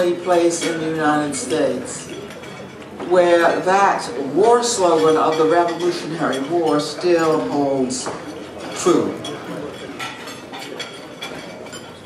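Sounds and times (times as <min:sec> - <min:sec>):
background room noise: 0:00.0 - 0:12.0
cutlery and dishes clinking: 0:00.0 - 0:12.0.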